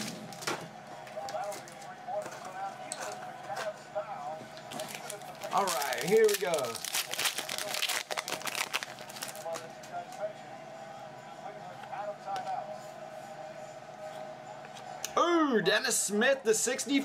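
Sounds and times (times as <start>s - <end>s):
foil wrapper crinkling: 4.7s - 9.7s.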